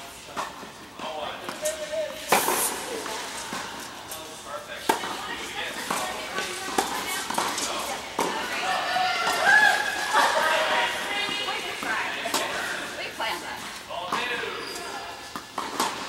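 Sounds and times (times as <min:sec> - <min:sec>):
players' voices: 0:00.0 - 0:16.0
rackets striking tennis ball: 0:00.3 - 0:16.0.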